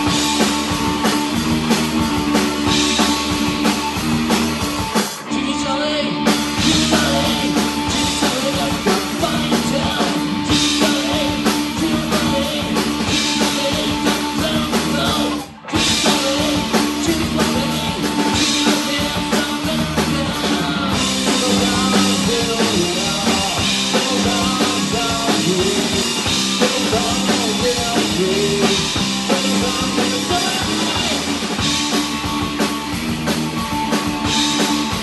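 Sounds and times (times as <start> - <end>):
live punk rock band playing: 0.0 - 35.0.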